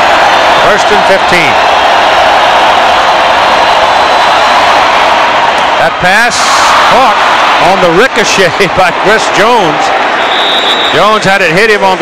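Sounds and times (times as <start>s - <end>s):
stadium crowd roaring: 0.0s - 12.0s.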